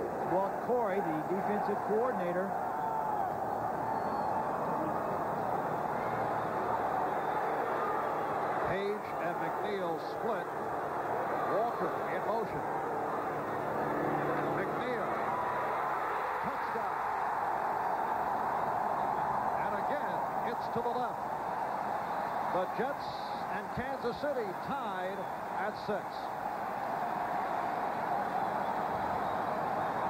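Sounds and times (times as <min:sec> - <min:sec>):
stadium crowd voices and shouts: 0:00.0 - 0:30.0.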